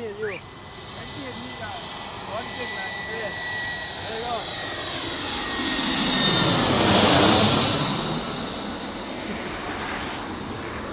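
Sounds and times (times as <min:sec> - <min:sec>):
jet engine roar: 0:00.0 - 0:10.9.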